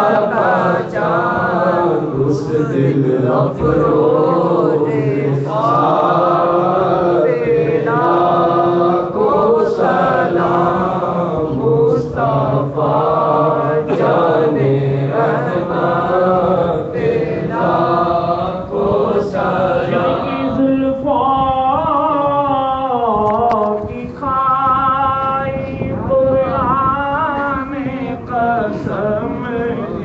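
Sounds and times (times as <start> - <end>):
men chanting together: 0.0 - 20.8.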